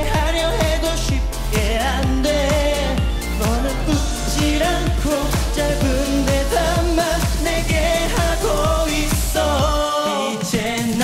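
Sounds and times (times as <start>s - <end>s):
pop song with male vocal: 0.0s - 11.0s.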